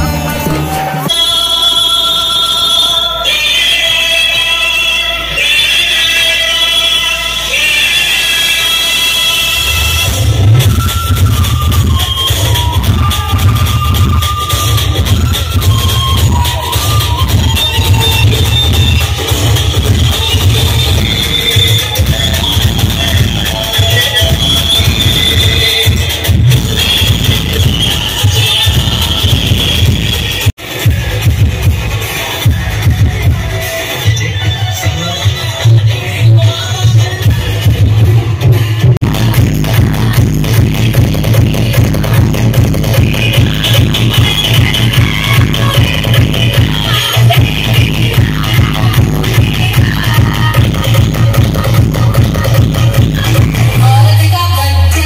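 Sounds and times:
heavy bass beat: 0.0 - 1.3, 9.0 - 55.0.

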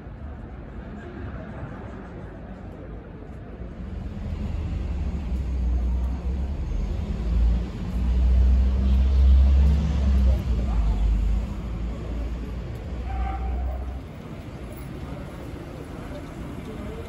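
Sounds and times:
vehicle engine rumble passing: 3.7 - 17.0.

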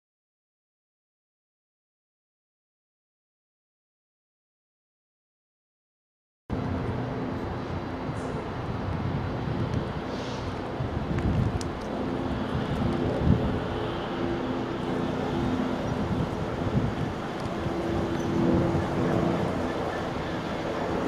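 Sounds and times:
wind on microphone: 6.5 - 21.0.

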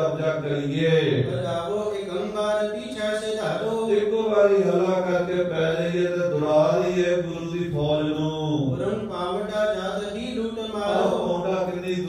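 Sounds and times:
man chanting through microphone: 0.0 - 12.0.

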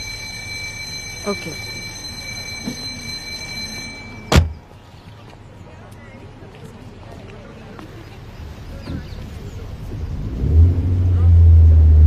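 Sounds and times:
car door shutting: 4.3 - 4.6.

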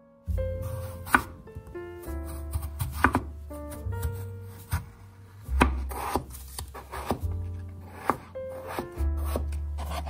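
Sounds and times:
knife striking cutting board: 0.6 - 4.9, 5.5 - 10.0
blade rasping through potato: 2.2 - 10.0.

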